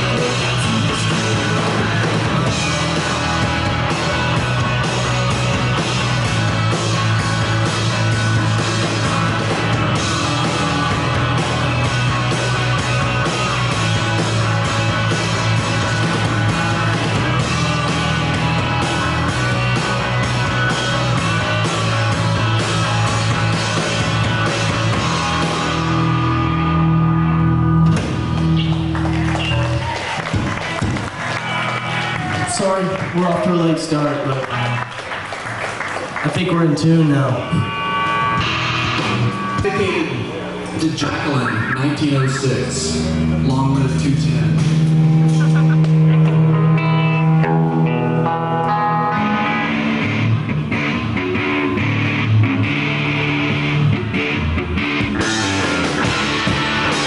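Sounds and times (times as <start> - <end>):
bass guitar droning: 0.0 - 35.0, 36.5 - 57.0
electric guitars droning: 0.0 - 57.0
sustained bass guitar note: 24.9 - 29.8, 37.4 - 57.0.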